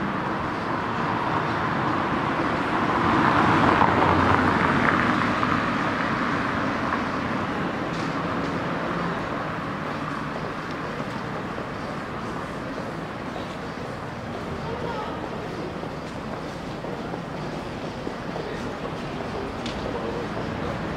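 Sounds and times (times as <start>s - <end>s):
street traffic: 0.0s - 20.9s.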